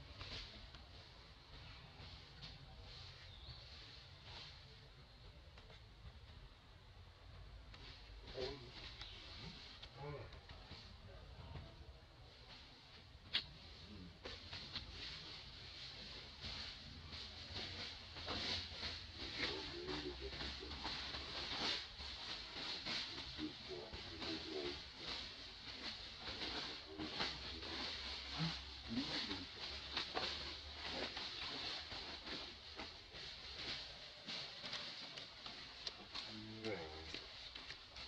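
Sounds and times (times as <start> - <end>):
dry leaves crackling and rustling: 14.3 - 38.0.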